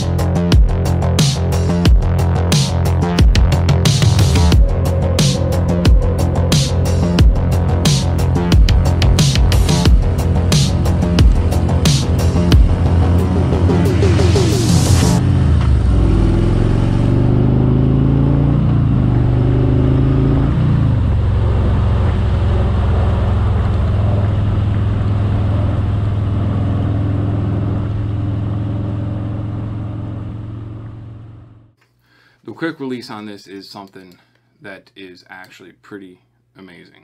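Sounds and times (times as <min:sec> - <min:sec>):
music: 0:00.0 - 0:19.0
motorcycle engine accelerating: 0:00.0 - 0:31.8.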